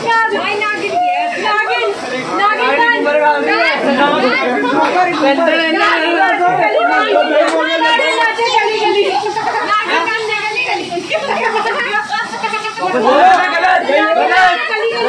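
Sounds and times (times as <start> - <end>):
group of voices chattering: 0.0 - 15.0.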